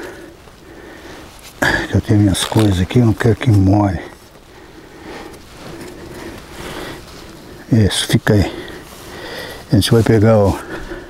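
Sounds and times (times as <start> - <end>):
plastic tarp rustling: 0.0 - 11.0
rain noise: 0.0 - 11.0.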